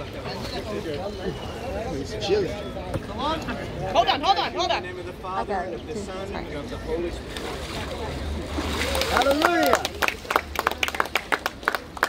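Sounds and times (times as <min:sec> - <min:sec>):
people clapping: 0:08.7 - 0:12.0.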